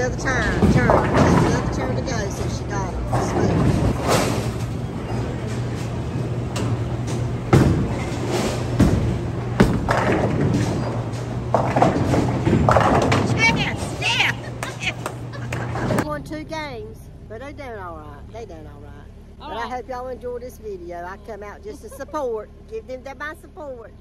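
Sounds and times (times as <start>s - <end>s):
bowling balls rolling on lanes: 0.0s - 16.1s
people chattering: 13.3s - 18.8s.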